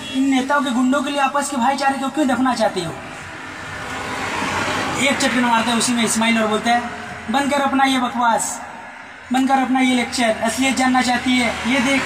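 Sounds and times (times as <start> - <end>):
vehicle passing by: 3.1 - 7.7, 8.4 - 12.0.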